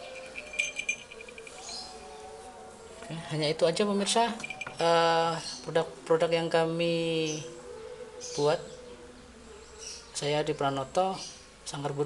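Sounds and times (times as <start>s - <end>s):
small bell jingling: 0.0s - 2.1s, 4.2s - 5.6s.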